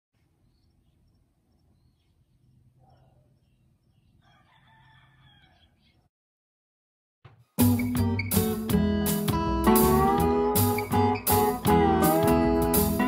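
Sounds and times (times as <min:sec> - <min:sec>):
faint rooster crow: 0:04.2 - 0:06.1.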